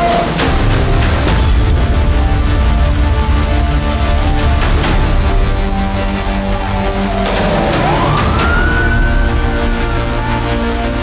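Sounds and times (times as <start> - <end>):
dark intro music with hits: 0.0 - 11.0
siren-like wail: 5.6 - 11.0.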